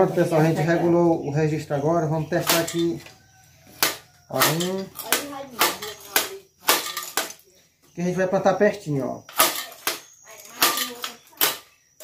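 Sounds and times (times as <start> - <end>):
planter striking concrete floor: 3.8 - 7.4, 9.3 - 11.7.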